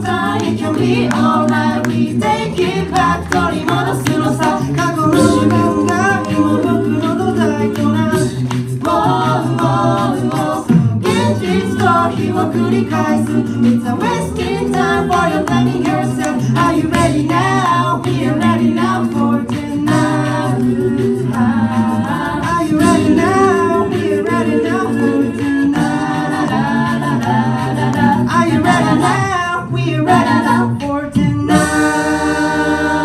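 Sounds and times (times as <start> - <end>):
a cappella group singing: 0.0 - 33.0
vocal percussion beat: 0.0 - 33.0.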